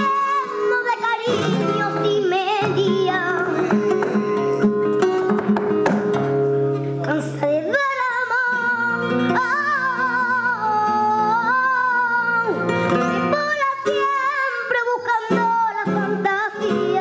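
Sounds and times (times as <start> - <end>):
flamenco guitar: 0.0 - 17.0
woman singing flamenco: 0.0 - 17.0.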